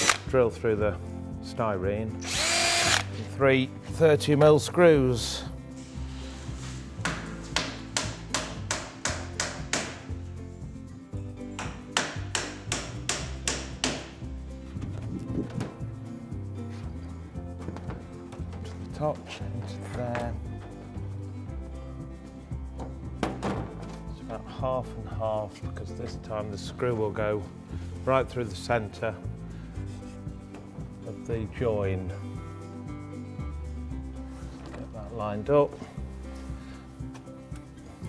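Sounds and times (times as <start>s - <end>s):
background music: 0.0s - 38.0s
hammer striking nails into wood: 7.0s - 10.1s, 11.6s - 14.2s.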